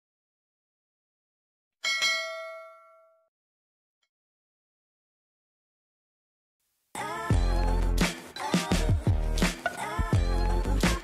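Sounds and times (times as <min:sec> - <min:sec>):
bell-like ding: 0:01.8 - 0:03.3.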